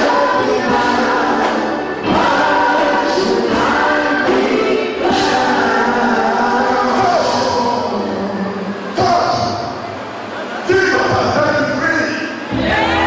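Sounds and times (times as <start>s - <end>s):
choir singing gospel: 0.0s - 10.4s, 12.5s - 13.0s.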